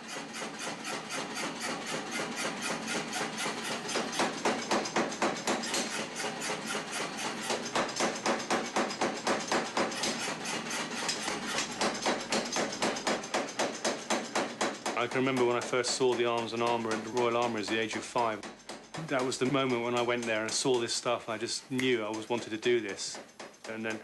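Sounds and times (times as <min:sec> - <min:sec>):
hammer striking hot steel: 0:00.9 - 0:21.1.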